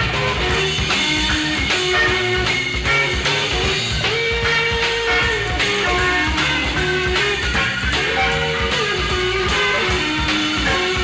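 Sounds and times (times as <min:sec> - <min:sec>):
drums and bass beat: 0:00.0 - 0:11.0
electric guitar lead: 0:00.0 - 0:11.0.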